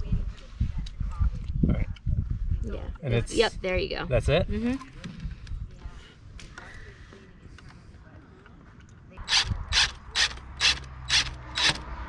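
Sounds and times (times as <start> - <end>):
ratchet wrench clicking: 9.3 - 11.9.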